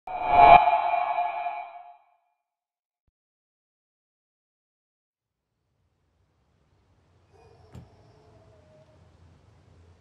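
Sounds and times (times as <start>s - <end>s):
low rumble: 0.1s - 1.9s
ringing tone: 0.1s - 1.9s.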